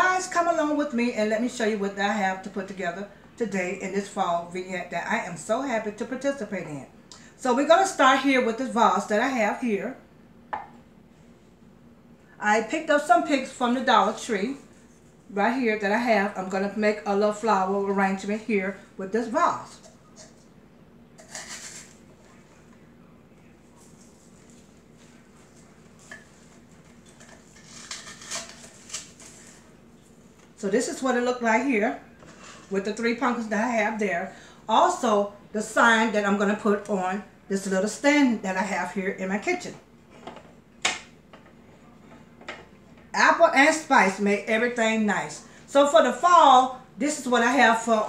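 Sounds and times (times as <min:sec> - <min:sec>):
sign knocking on countertop: 0:10.5 - 0:10.8
artificial flowers rustling: 0:23.6 - 0:30.4.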